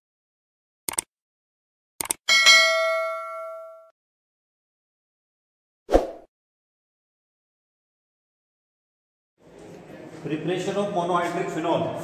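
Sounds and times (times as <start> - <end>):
notification bell ding: 2.3 - 3.9.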